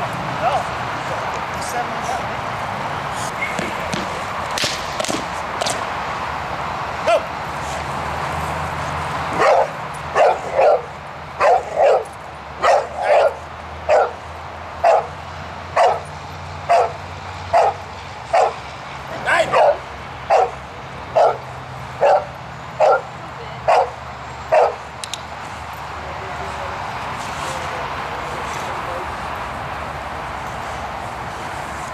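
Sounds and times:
dog barking: 9.4s - 14.2s, 14.8s - 15.1s, 15.8s - 16.1s, 16.7s - 18.6s, 19.5s - 24.8s.

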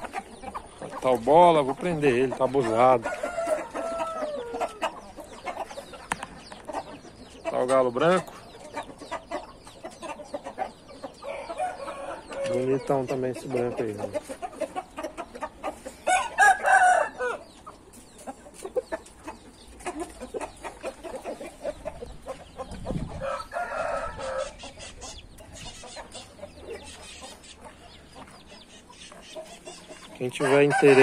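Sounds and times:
roosters crowing: 0.0s - 31.0s.

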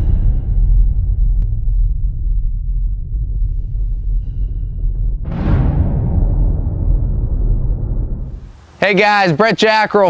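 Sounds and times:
deep bass rumble: 0.0s - 8.8s.

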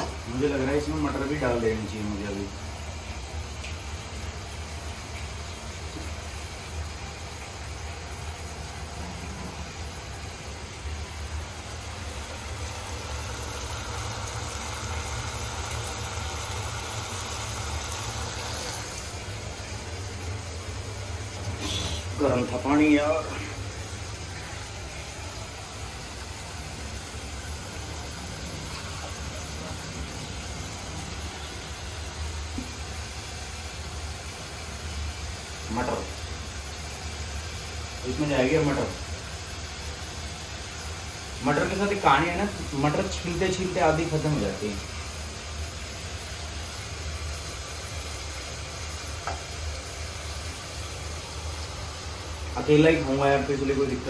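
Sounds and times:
steady hissing noise: 0.0s - 54.0s
person speaking: 21.4s - 23.7s.

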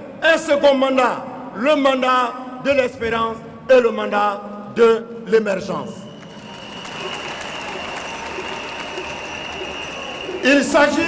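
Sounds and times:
crowd applauding: 6.1s - 11.0s.

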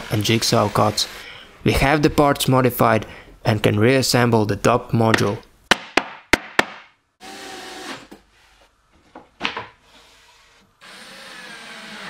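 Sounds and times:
cordless drill driving screws: 10.0s - 12.0s.

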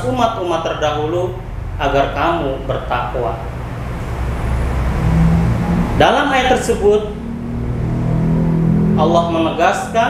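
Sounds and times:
low hum: 0.0s - 10.0s
vehicle engine rumbling: 0.0s - 10.0s.

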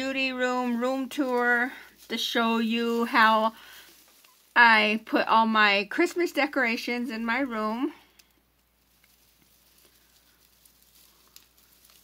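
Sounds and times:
foil tinsel crinkling: 0.0s - 12.0s.

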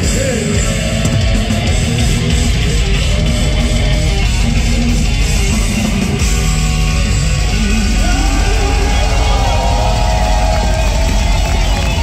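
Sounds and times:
bass guitar: 0.0s - 12.0s
distorted electric guitars: 0.0s - 12.0s
drums: 0.0s - 12.0s.

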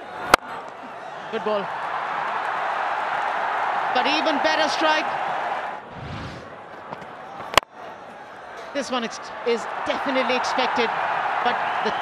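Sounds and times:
low whoosh: 5.9s - 6.5s.

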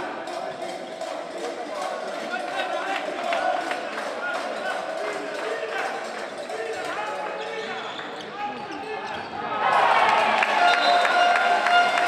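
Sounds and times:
voices in echoing hall: 0.0s - 12.0s.

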